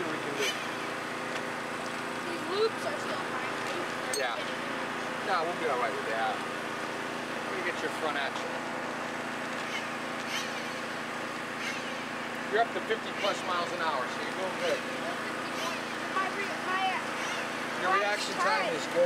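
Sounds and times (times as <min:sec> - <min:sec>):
steady mechanical hum: 0:00.0 - 0:19.0
indistinct voices: 0:12.6 - 0:19.0.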